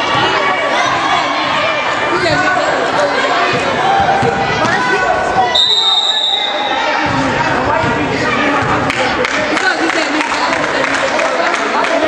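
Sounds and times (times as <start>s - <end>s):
crowd voices: 0.0s - 12.0s
referee whistle blast: 5.5s - 6.8s.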